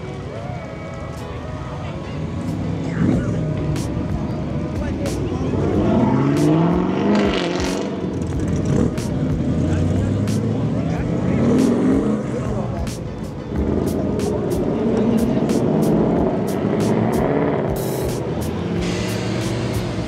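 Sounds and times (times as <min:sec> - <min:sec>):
cars accelerating with engines revving: 0:00.0 - 0:20.0.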